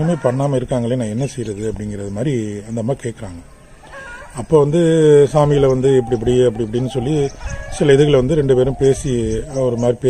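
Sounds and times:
man talking loudly: 4.4 - 10.0.

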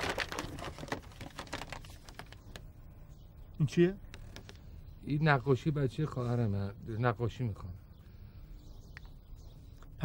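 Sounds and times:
paper crinkling: 0.0 - 2.7.

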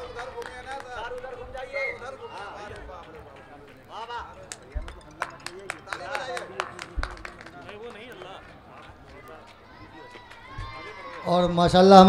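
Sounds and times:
faint voices chattering: 0.0 - 12.0.

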